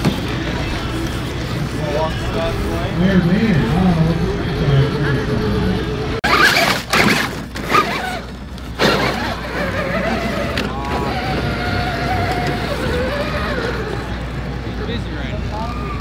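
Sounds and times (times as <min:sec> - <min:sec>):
people talking: 0:00.0 - 0:06.4, 0:09.8 - 0:16.0
outdoor background noise: 0:00.0 - 0:16.0.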